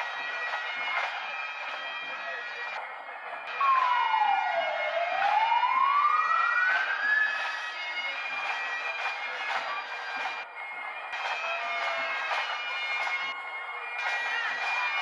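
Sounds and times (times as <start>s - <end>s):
bagpipe music: 0.0s - 15.0s
siren wailing: 3.5s - 8.0s.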